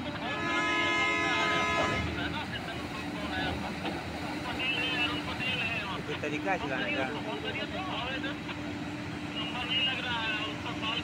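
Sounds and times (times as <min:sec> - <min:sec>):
people talking: 0:00.0 - 0:08.7, 0:09.3 - 0:11.0
heavy machinery engine hum: 0:00.0 - 0:11.0.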